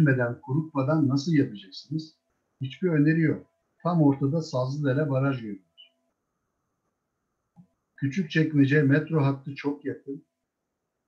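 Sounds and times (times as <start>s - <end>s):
man speaking: 0.0s - 5.8s, 8.0s - 10.2s.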